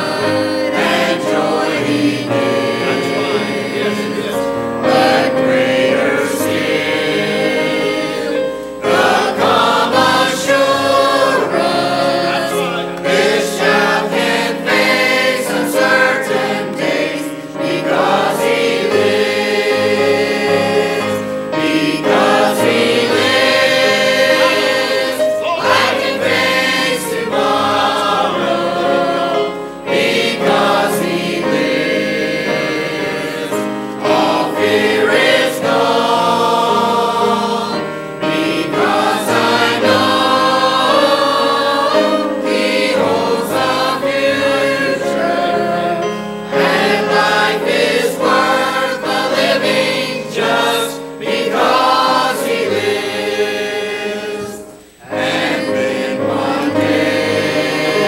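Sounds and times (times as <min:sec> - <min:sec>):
choir singing gospel: 0:00.0 - 0:58.0.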